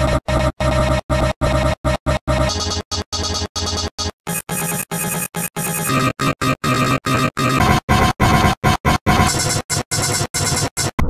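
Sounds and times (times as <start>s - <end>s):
harsh distorted audio: 0.0s - 11.0s.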